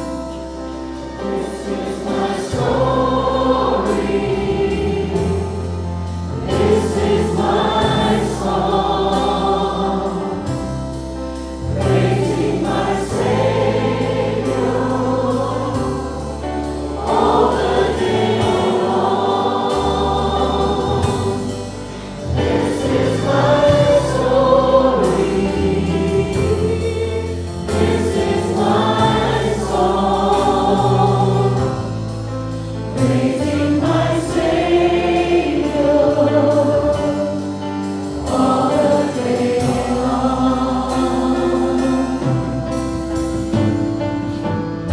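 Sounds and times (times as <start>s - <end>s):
congregation singing: 0.0s - 44.9s
sustained bass notes: 0.0s - 44.9s
worship band playing: 0.0s - 44.9s.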